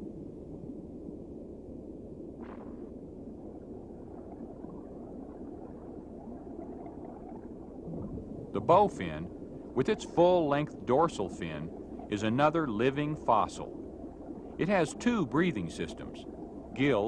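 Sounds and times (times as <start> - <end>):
muffled underwater rumble: 0.0 - 17.0
soft hiss: 0.0 - 17.0.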